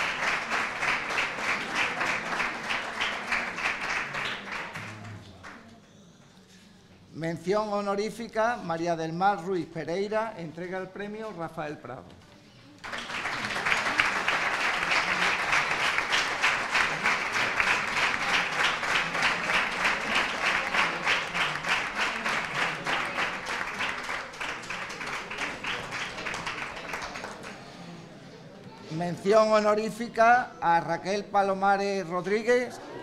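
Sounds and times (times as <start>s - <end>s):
audience applauding: 0.0s - 5.6s, 12.8s - 27.8s.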